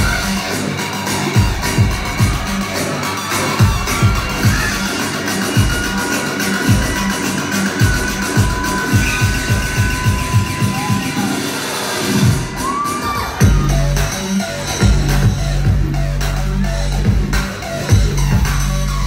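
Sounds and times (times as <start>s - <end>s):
crowd cheering: 0.0s - 15.3s
electronic dance music: 0.0s - 19.0s.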